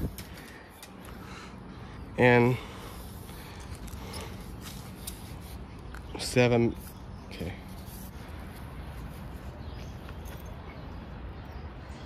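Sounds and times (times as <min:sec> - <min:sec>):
quiet outdoor background noise: 0:00.0 - 0:12.0.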